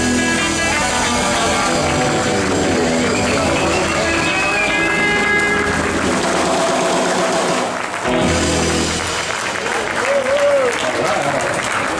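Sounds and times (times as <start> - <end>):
live rockabilly band playing: 0.0 - 10.3
audience applause: 0.0 - 11.9
person cheering: 9.7 - 11.4.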